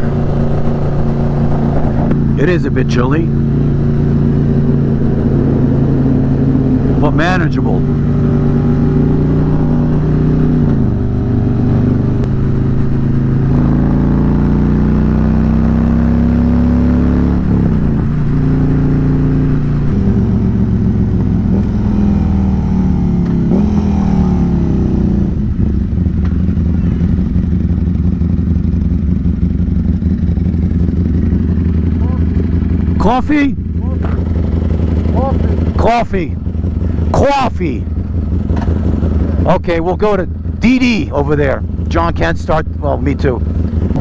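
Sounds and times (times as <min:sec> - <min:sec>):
motorcycle engine shifting gears: 0:00.0 - 0:40.6, 0:42.6 - 0:44.0.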